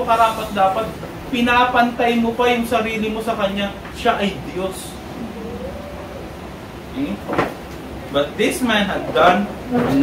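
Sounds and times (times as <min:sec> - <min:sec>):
low room hum: 0:00.0 - 0:10.0
short vocal sound: 0:05.0 - 0:06.6.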